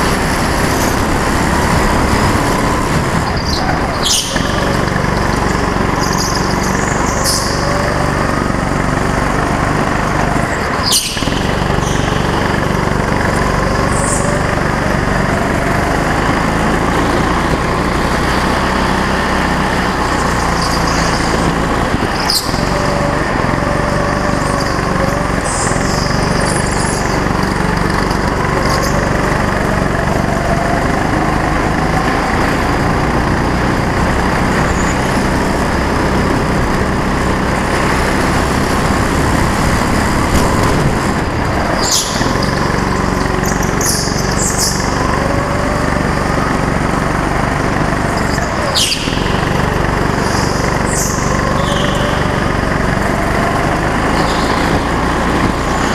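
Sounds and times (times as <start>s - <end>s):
go-kart engine running: 0.0s - 55.9s
high squeals: 0.0s - 55.9s.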